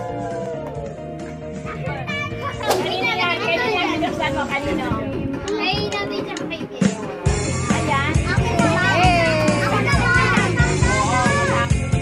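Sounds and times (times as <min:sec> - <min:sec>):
background music: 0:00.0 - 0:12.0
children shouting and squealing: 0:01.6 - 0:04.4, 0:05.0 - 0:12.0.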